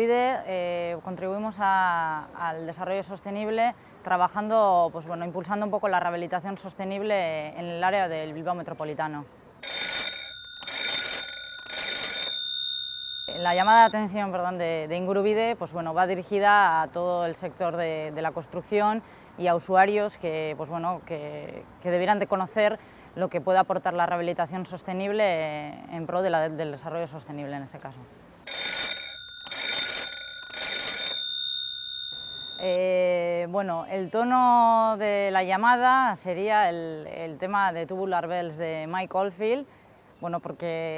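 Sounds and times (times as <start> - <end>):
old telephone bell ringing: 9.6 - 14.2, 28.5 - 33.1.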